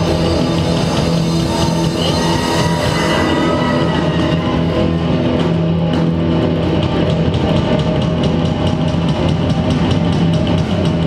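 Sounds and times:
electric bass: 0.0s - 11.0s
drum kit steady beat: 4.8s - 11.0s.

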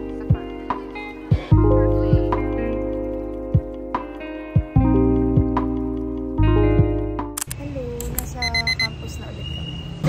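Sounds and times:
woman speaking: 7.5s - 9.5s
quick high electronic beeps: 8.2s - 10.0s.

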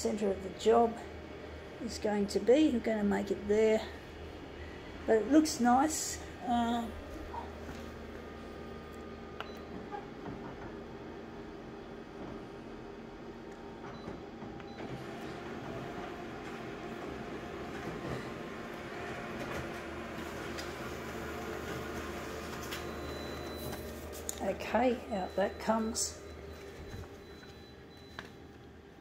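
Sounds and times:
copier mechanical whir: 0.0s - 29.0s.

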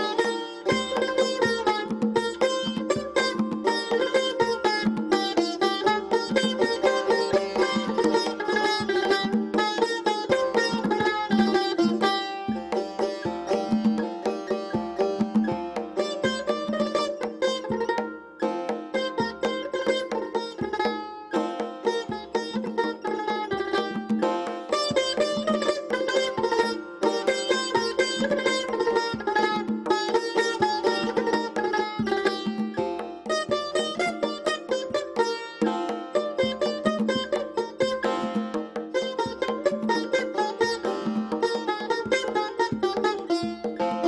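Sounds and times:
plucked lute notes: 0.0s - 44.0s
goblet drum beat: 0.6s - 44.0s.

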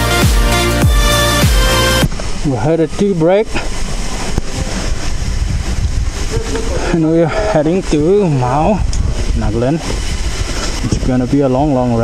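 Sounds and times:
wind buffeting microphone: 2.0s - 12.0s.

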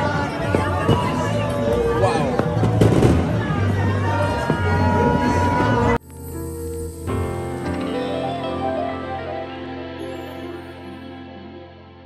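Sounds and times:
piano: 0.0s - 12.0s
soft slow background music: 6.0s - 12.0s.

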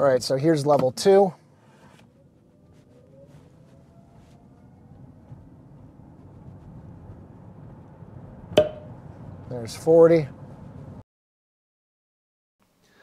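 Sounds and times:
road and tyre noise: 0.0s - 11.0s.

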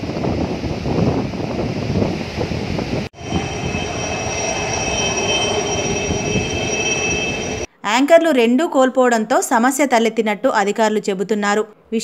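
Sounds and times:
wind: 0.0s - 7.9s
high whining tones: 3.2s - 7.7s.

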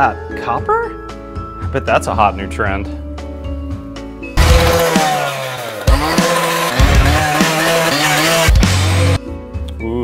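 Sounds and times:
loud music with heavy low hits: 4.4s - 9.2s
power saw revving: 4.4s - 9.2s.

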